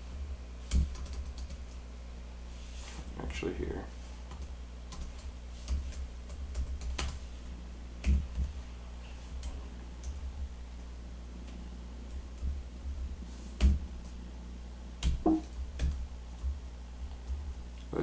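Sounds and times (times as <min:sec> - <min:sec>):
steady low hum: 0:00.0 - 0:18.0
computer keyboard typing: 0:00.7 - 0:01.8, 0:04.3 - 0:07.2.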